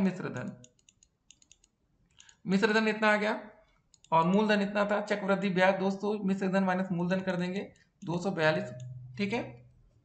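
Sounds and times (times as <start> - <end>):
man speaking: 0.0 - 0.6, 2.4 - 9.7
stylus ticking on a tablet: 0.3 - 2.6, 3.7 - 5.0, 6.7 - 9.3.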